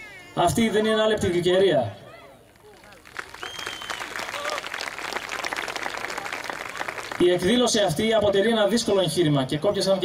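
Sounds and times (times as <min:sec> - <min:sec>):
audience applauding: 0:02.7 - 0:07.4
short high whistle: 0:03.4 - 0:04.1.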